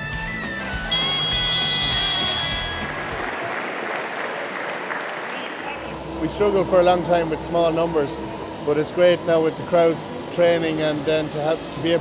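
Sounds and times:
scoreboard buzzer: 0.9s - 3.0s
crowd applause: 0.9s - 5.9s.

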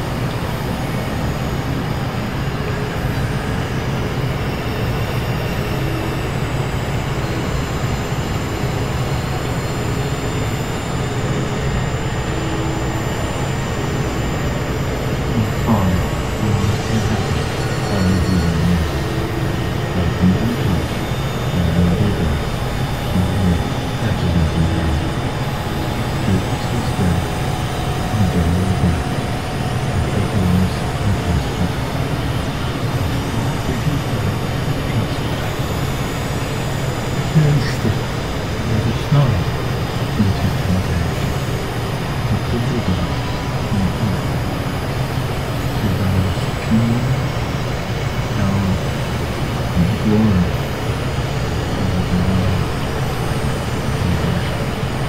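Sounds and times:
synthesizer drones: 0.0s - 55.0s
rising synth glides: 0.4s - 40.1s.

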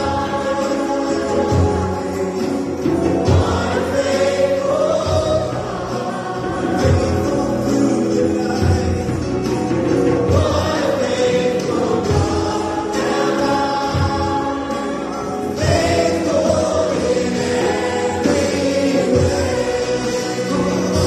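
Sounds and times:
choir singing gospel song: 0.0s - 21.0s
musical backing: 0.0s - 21.0s.

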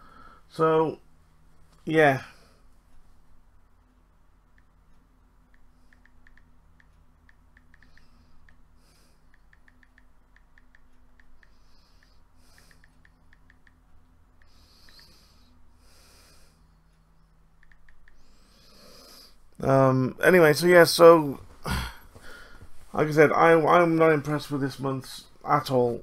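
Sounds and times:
soft breaths: 0.0s - 0.6s, 1.3s - 3.4s, 7.6s - 10.0s, 10.8s - 19.6s, 21.2s - 26.0s
steady low hum: 0.0s - 26.0s
light irregular ticks: 3.8s - 20.1s.

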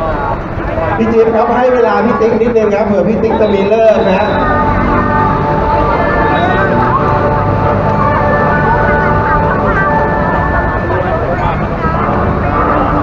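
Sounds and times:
indistinct voices talking: 0.0s - 13.0s
loud steady hum: 0.0s - 13.0s.

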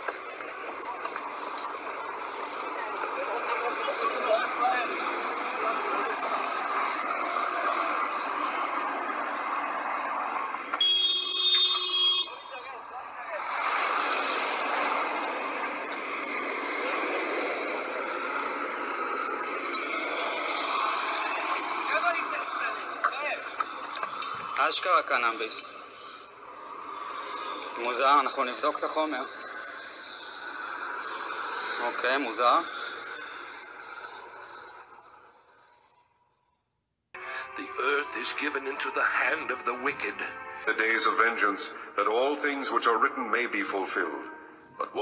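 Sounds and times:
people talking and calling out: 0.0s - 35.1s, 37.2s - 45.0s
traffic hum: 0.0s - 45.0s.

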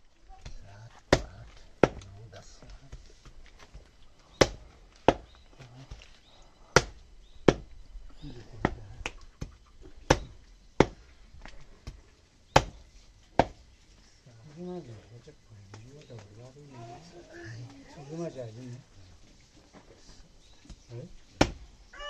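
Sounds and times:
heavy knife chopping meat: 10.1s - 11.0s.

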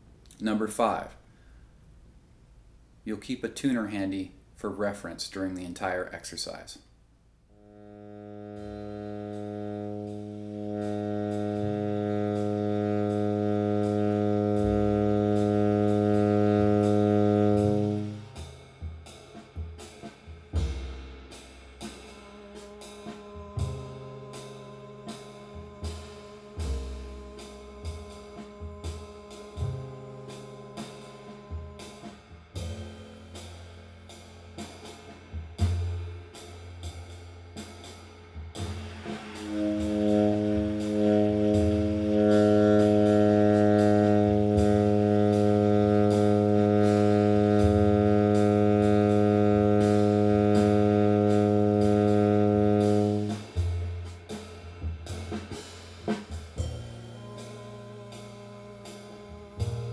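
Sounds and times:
bass playing: 7.4s - 59.9s
tenor saxophone long tone: 7.5s - 18.4s, 22.0s - 32.9s, 39.1s - 53.9s, 56.0s - 59.9s
drums playing swing rhythm: 8.3s - 59.9s.

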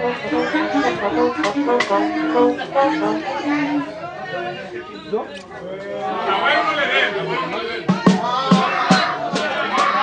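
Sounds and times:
brass band melody: 0.0s - 4.1s
drum and cymbal strikes: 7.9s - 10.0s.

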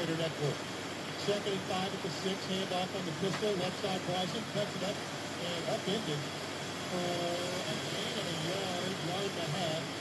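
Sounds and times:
announcer speaking: 0.0s - 0.6s, 1.2s - 6.2s, 6.9s - 9.9s
background noise and hiss: 0.0s - 10.0s.

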